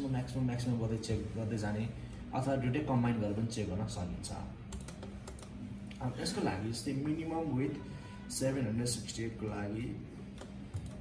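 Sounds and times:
computer keyboard keystrokes: 4.7 - 5.6.

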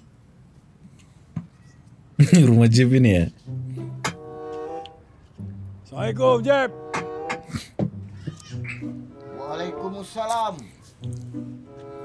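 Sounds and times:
held music notes: 2.8 - 12.0
low bass line: 5.4 - 7.3.

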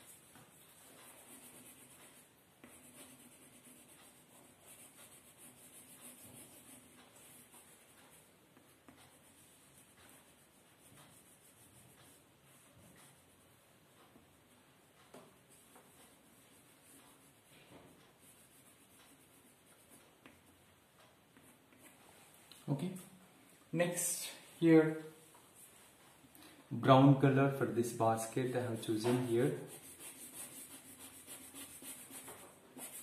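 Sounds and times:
pencil scratching on paper: 0.0 - 20.6, 21.3 - 22.0, 28.2 - 33.0.

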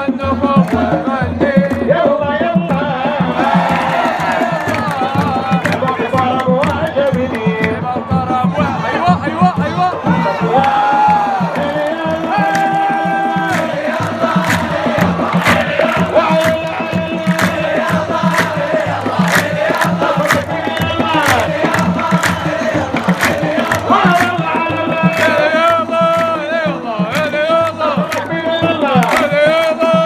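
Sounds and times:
crowd singing a chant: 0.0 - 30.0
frame drums beating: 0.0 - 30.0.

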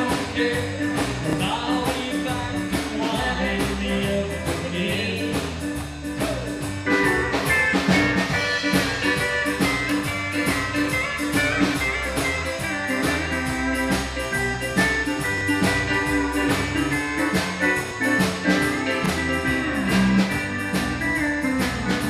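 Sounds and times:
country band playing: 0.0 - 22.0
sliding pedal steel guitar: 0.0 - 22.0
steady drum beat: 0.0 - 22.0.

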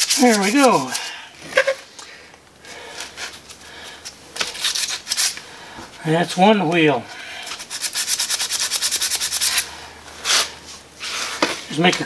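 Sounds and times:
sandpaper rubbing on wood: 0.0 - 1.0, 7.6 - 11.4.

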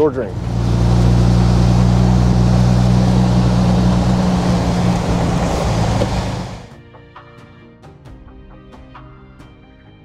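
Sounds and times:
car engine humming: 0.0 - 6.7.

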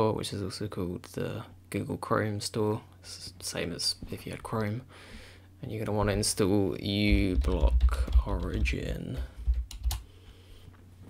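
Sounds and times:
computer keyboard typing: 7.0 - 10.0.

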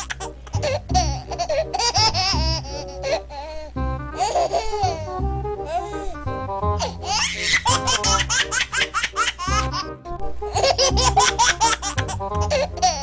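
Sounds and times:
baby laughing: 0.0 - 6.2, 6.8 - 13.0
background music: 0.0 - 13.0.

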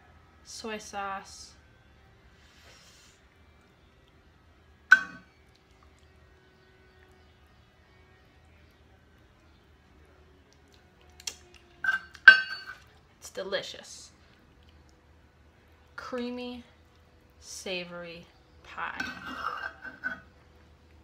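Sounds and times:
metal cup clinking on pan: 4.9 - 5.2, 11.8 - 12.8.

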